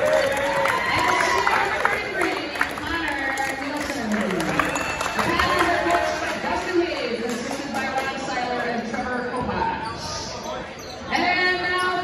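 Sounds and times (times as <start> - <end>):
voices in a gym: 0.0 - 12.0.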